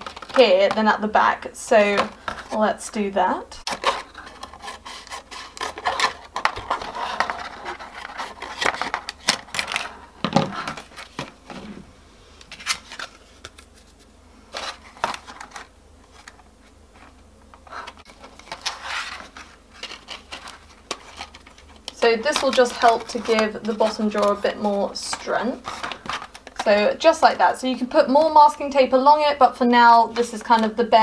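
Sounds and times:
plastic crackling and rustling: 0.0s - 2.6s, 3.6s - 11.8s, 12.4s - 28.6s
scissors snipping plastic: 19.8s - 26.7s.

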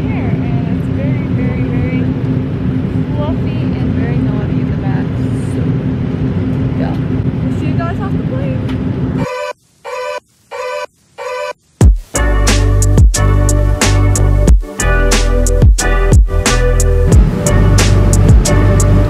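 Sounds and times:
airliner engine and air rumble: 0.0s - 9.8s, 16.9s - 19.0s
music in short bursts: 9.2s - 19.0s.

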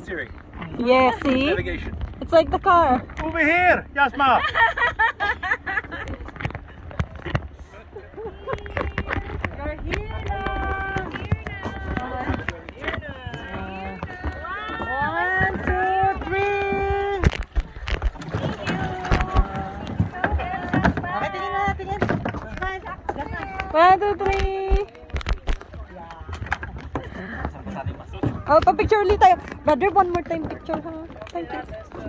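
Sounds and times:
people talking and calling out: 0.0s - 32.0s
wind rumble on microphone: 0.0s - 32.0s.

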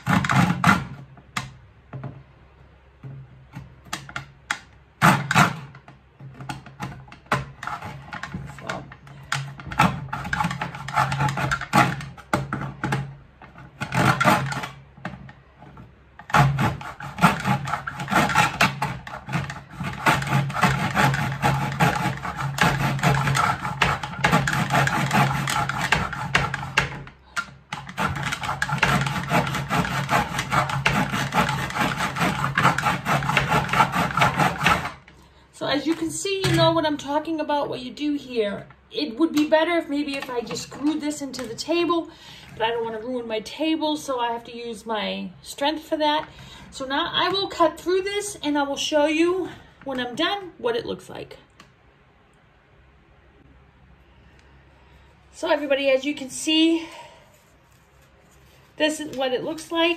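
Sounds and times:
handsaw cutting wood: 0.0s - 1.0s, 5.0s - 5.7s, 9.4s - 12.5s, 13.7s - 14.8s, 16.2s - 35.1s.

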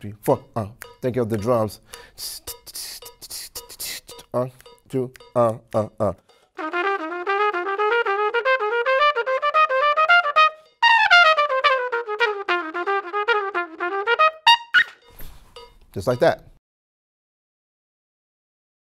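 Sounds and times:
trumpet playing scale: 6.6s - 15.1s.

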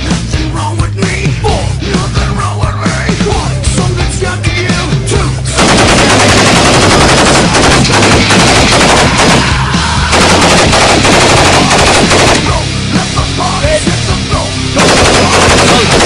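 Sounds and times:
machine guns firing rapid bursts: 5.6s - 12.6s, 14.8s - 16.0s.

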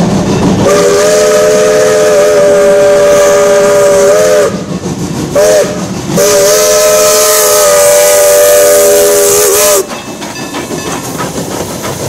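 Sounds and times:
steam engine running noise: 0.0s - 12.0s
steam locomotive chime whistle: 0.3s - 4.7s, 5.4s - 11.0s.

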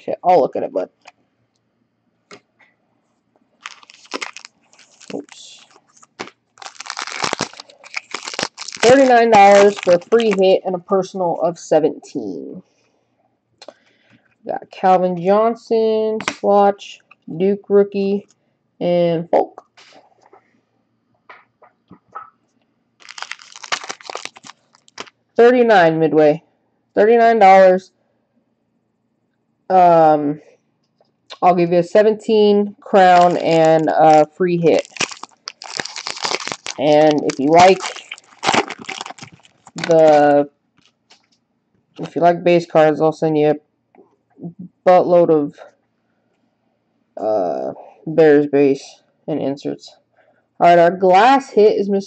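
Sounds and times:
wrapper crinkling: 3.6s - 10.6s, 23.0s - 25.2s, 32.9s - 41.3s.

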